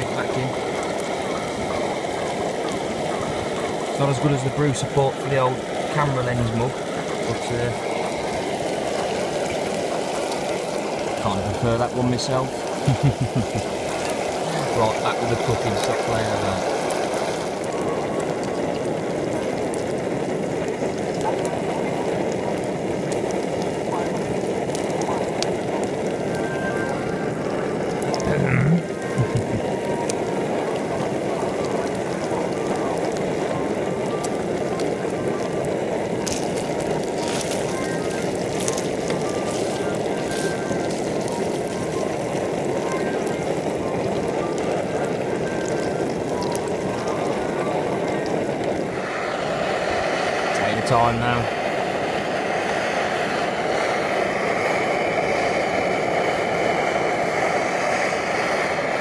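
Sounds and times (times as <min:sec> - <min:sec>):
camping stove roaring: 0:00.0 - 0:59.0
food sizzling in a frying pan: 0:00.0 - 0:59.0.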